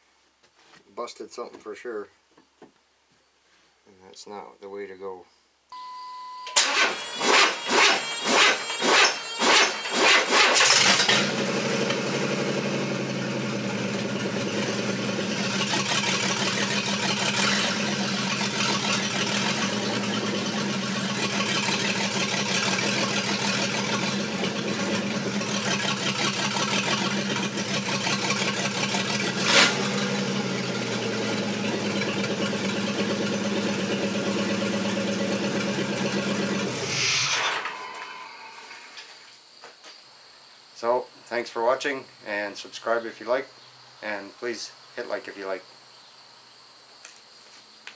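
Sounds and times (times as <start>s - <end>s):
brief beep: 5.7s - 6.6s
engine cranking and idling: 6.4s - 39.1s.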